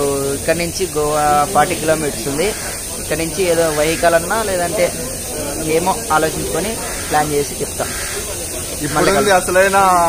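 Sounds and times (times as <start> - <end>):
men talking: 0.0 - 10.0
steady background hiss: 0.0 - 10.0.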